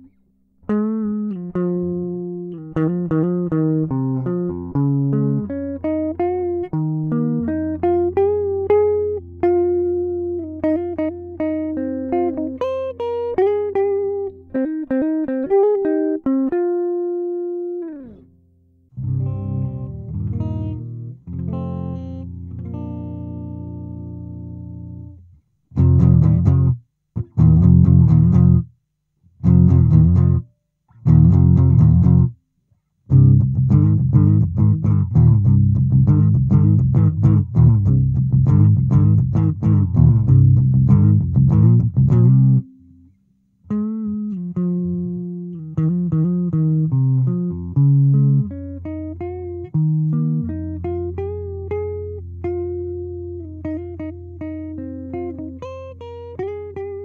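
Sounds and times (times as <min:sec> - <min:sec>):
electric guitar through practice amp: 0:00.0 - 0:28.7, 0:29.4 - 0:32.4, 0:33.1 - 0:57.0
clean electric guitar lead: 0:00.7 - 0:18.3, 0:19.0 - 0:25.2, 0:33.1 - 0:43.0, 0:43.7 - 0:57.0.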